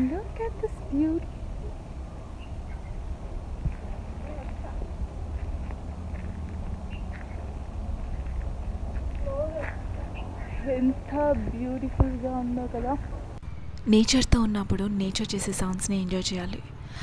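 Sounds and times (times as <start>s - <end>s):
wind rumble on microphone: 0.0s - 13.4s.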